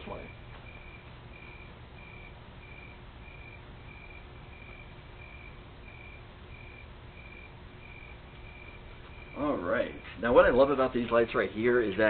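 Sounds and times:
background hiss and hum: 0:00.0 - 0:12.0.

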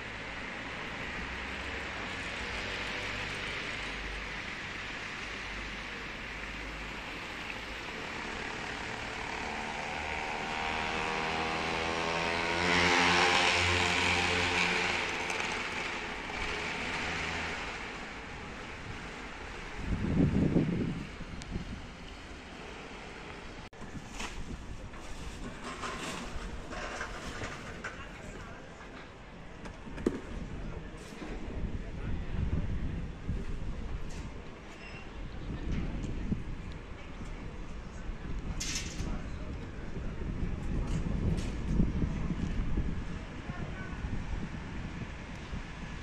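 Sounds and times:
vehicle passing by: 0:07.9 - 0:19.0.

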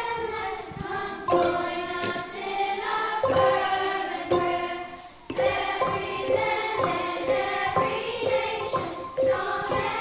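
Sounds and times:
children's choir singing: 0:00.0 - 0:10.0
xylophones played with mallets: 0:01.2 - 0:02.4, 0:03.2 - 0:10.0.

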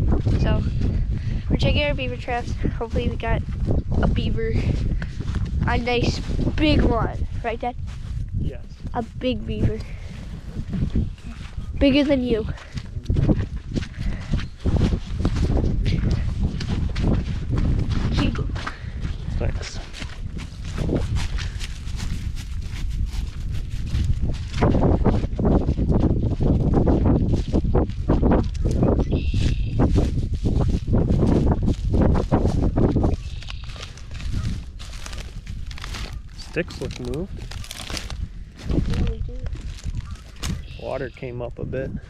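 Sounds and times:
footsteps crunching through dry grass: 0:00.0 - 0:41.0
wind rumble on microphone: 0:00.0 - 0:42.0.

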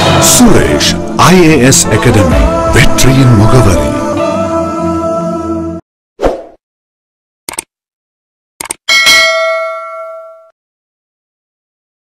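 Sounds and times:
notification ding: 0:08.9 - 0:10.5.

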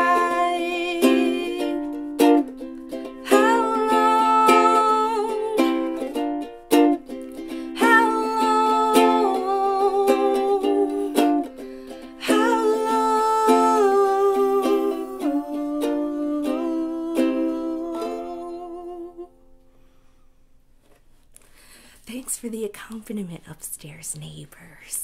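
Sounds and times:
ukulele chords ringing: 0:00.0 - 0:19.6.

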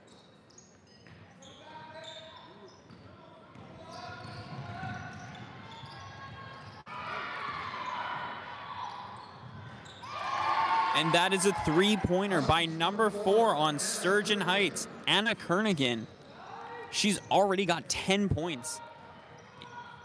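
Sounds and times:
basketball bouncing on court: 0:02.7 - 0:06.8
echoing voices: 0:10.9 - 0:16.2, 0:16.8 - 0:19.0.

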